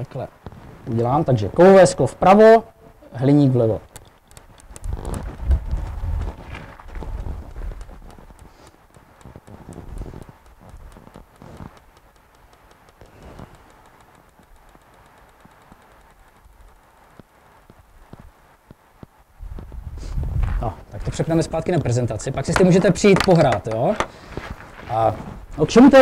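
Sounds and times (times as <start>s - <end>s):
metal ball bouncing on metal plate: 22.4s - 24.1s.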